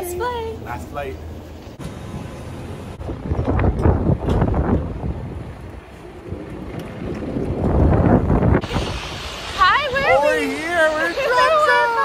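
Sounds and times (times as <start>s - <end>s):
wind buffeting microphone: 1.8s - 11.4s.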